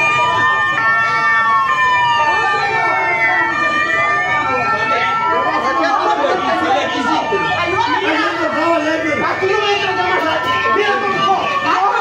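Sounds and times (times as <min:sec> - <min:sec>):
police sirens wailing: 0:00.0 - 0:12.0.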